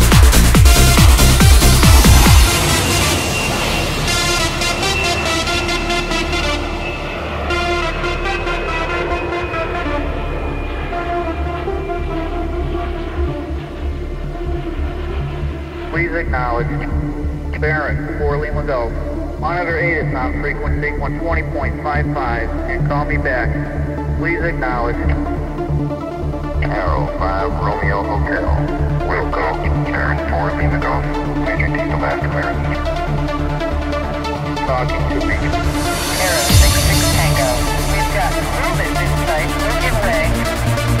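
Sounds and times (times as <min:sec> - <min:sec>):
hard trance music: 0:00.0 - 0:41.0
voice over radio transmission: 0:15.9 - 0:25.3, 0:26.6 - 0:32.9, 0:34.6 - 0:40.6.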